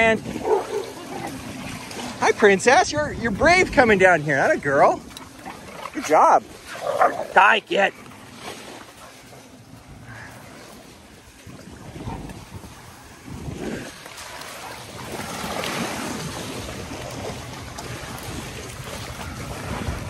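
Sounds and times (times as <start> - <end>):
wind buffeting microphone: 0.0 - 7.6, 8.3 - 20.0
small waves washing onto sand: 0.0 - 20.0.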